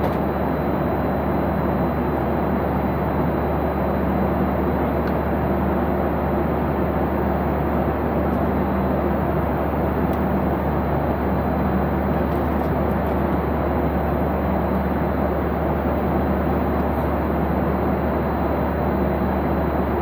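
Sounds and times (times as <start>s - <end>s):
jet airliner cabin rumble: 4.2s - 20.0s.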